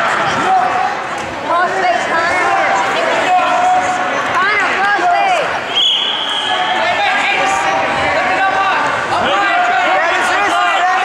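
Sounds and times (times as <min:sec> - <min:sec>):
people shouting: 0:00.0 - 0:11.0
referee's whistle blast: 0:05.7 - 0:06.8.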